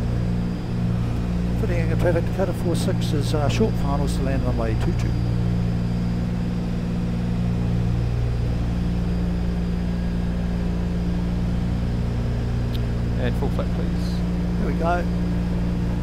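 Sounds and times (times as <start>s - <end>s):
propeller aircraft engines droning: 0.0s - 16.0s.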